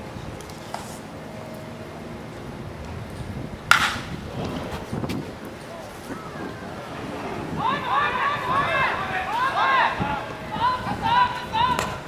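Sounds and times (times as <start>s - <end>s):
baseball bat cracking on ball: 3.7s - 4.2s.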